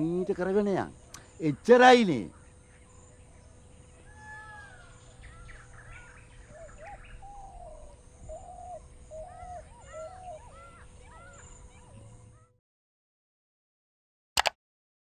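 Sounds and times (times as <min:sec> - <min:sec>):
birds calling: 0:00.0 - 0:12.5
faint steady hum: 0:00.0 - 0:12.5.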